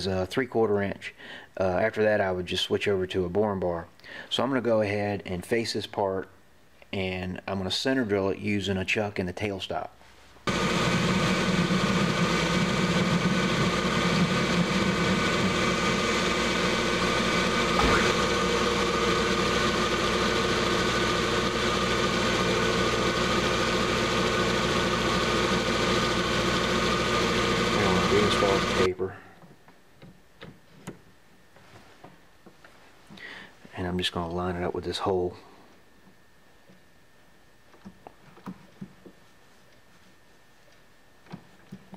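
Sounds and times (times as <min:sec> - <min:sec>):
drill cutting steel bar: 0:10.5 - 0:28.9
metal lathe running: 0:10.5 - 0:28.9.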